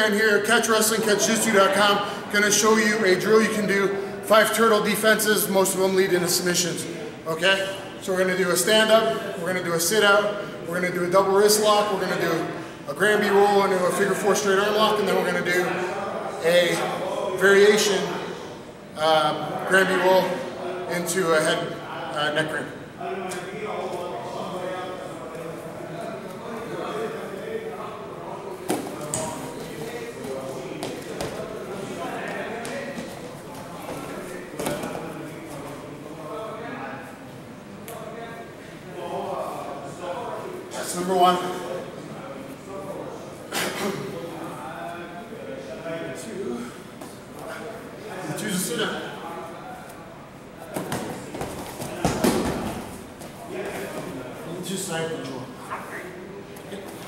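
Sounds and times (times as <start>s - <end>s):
scuffling on gym mats: 28.6s - 35.8s, 50.7s - 54.2s.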